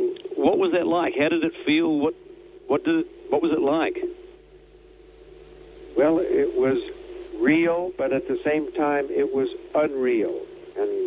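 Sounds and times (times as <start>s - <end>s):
faint hum tone with hiss: 0.0s - 11.0s.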